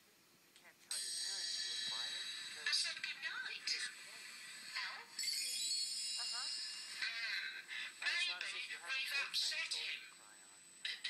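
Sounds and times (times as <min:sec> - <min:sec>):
television dialogue: 0:00.0 - 0:11.0
high hiss with whining tones: 0:00.9 - 0:11.0.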